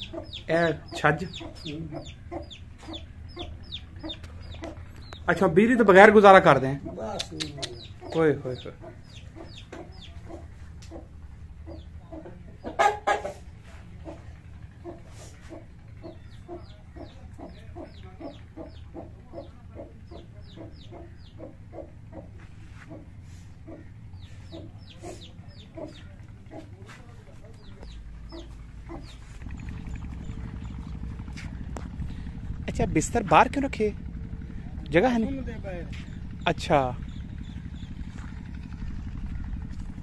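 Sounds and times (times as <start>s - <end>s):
chickens clucking: 0.0s - 32.5s
low engine hum: 0.0s - 40.0s.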